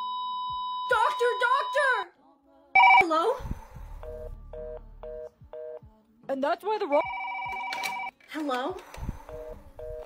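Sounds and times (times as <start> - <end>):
telephone busy signal beeps: 2.8 - 3.0.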